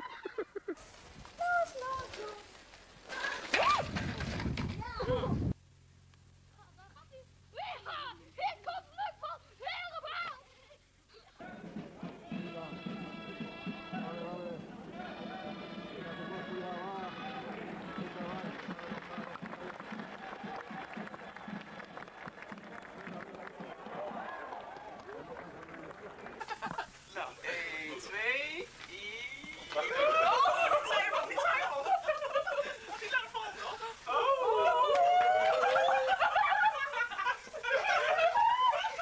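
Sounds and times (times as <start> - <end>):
crowd voices: 11.4 - 37.0
music with held notes: 12.0 - 17.8.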